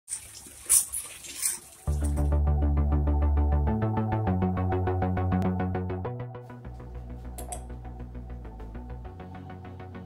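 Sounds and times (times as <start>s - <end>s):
music with a steady beat: 1.9s - 10.0s.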